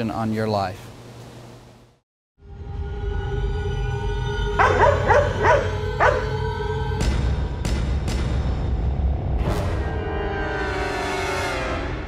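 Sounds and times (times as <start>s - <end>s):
dark background music: 2.4s - 12.0s
dog barking: 4.6s - 6.4s.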